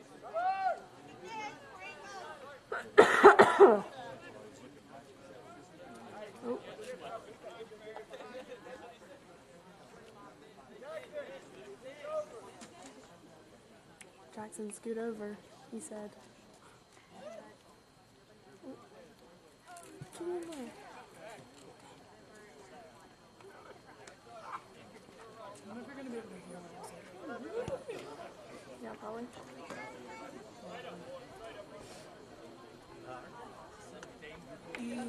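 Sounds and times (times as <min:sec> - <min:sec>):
distant spectators chattering: 0:00.0 - 0:35.0
person coughing: 0:03.0 - 0:03.8.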